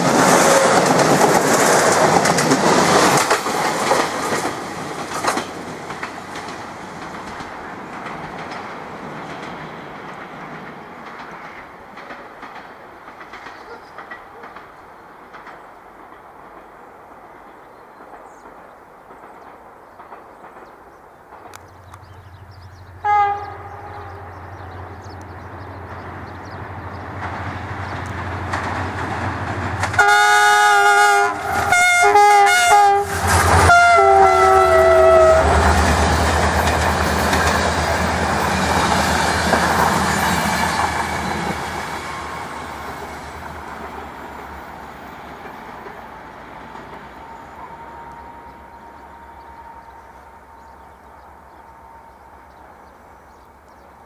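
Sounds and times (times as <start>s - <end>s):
train wheels clattering on rail: 0.0s - 51.8s
diesel locomotive engine droning: 21.4s - 54.0s
multi-tone train horn blasts: 23.0s - 25.0s, 29.9s - 36.1s, 47.4s - 50.4s.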